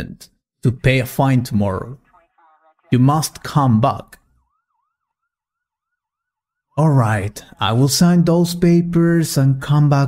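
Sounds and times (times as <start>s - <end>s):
faint siren yelping: 1.9s - 6.8s.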